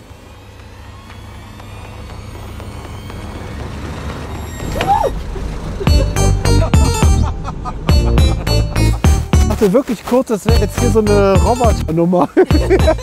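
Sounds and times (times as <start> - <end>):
low vehicle rumble: 0.0 - 9.8.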